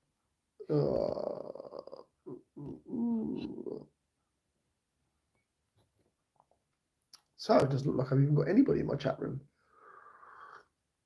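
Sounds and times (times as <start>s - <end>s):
man's wordless vocal sounds: 0.6s - 3.9s.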